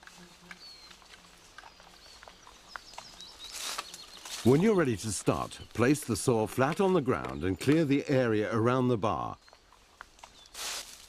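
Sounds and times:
footsteps in dry leaves: 0.0 - 6.2, 9.8 - 11.0
high bird chirps: 1.7 - 4.6.

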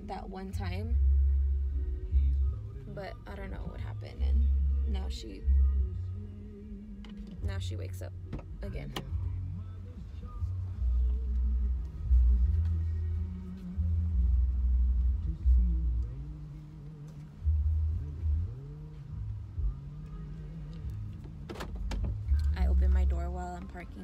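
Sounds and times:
car engine rumbling: 0.0 - 24.0.

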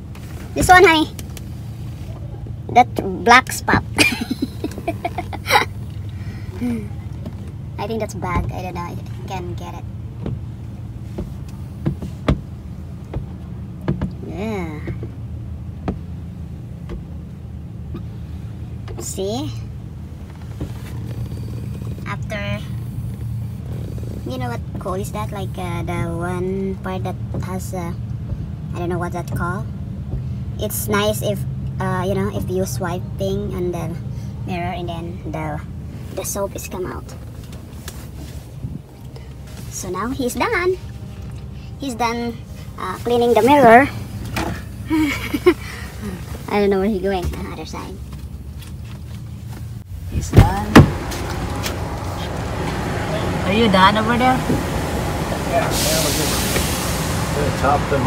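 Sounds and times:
diesel truck engine idling: 49.7 - 58.0.

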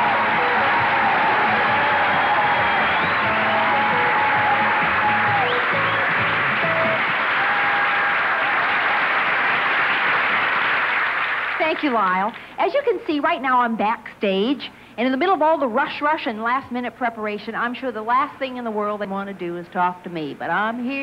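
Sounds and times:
stage music: 0.0 - 10.9
audience applause: 0.0 - 12.1.

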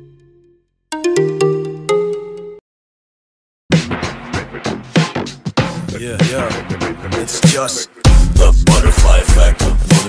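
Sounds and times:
musical logo jingle: 0.0 - 2.6.

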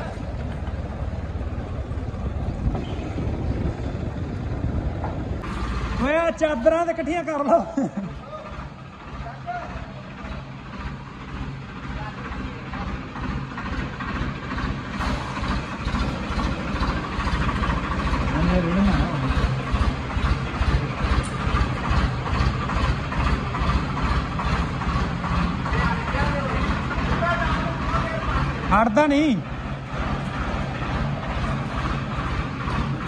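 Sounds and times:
tractor diesel engine running: 0.0 - 33.0.

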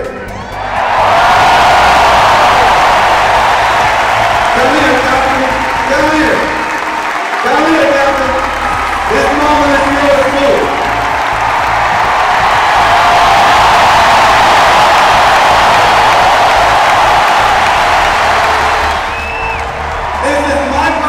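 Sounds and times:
crowd cheering and applauding: 0.0 - 21.0.

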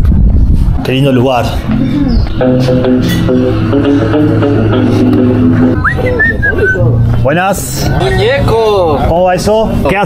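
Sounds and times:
background music with bass line: 0.6 - 9.0
person whistling: 5.8 - 6.9.

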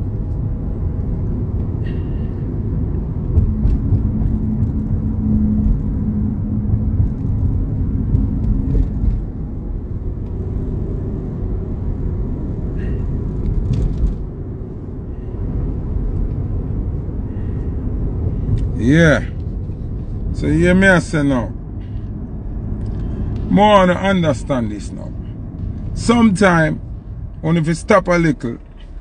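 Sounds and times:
car engine rumble inside cabin: 0.0 - 29.0
steady hum: 0.0 - 29.0.

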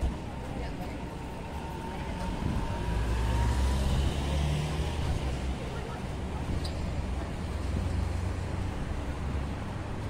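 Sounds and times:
steady traffic noise: 0.0 - 10.0
vehicle engine rumble driving past: 0.2 - 9.1.

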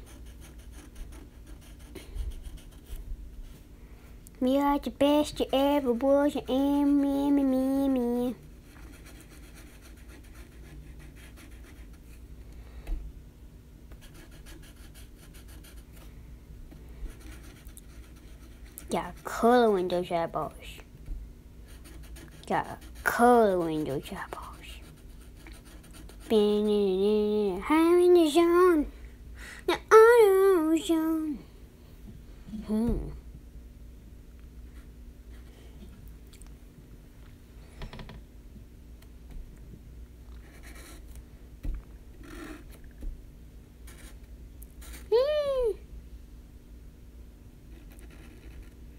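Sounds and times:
marker rubbing on paper: 0.0 - 3.0, 8.7 - 12.1, 14.0 - 15.8, 17.1 - 19.8, 21.7 - 26.7.

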